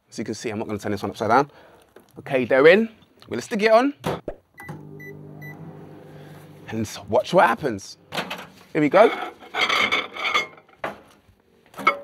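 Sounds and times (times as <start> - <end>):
microwave keypad beeping: 4.6 - 5.7
microwave running hum: 4.6 - 8.8.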